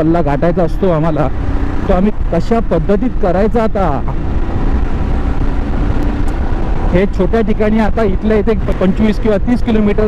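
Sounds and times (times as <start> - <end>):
man talking: 0.0 - 4.2, 6.9 - 10.0
motorcycle engine and wind: 0.0 - 10.0.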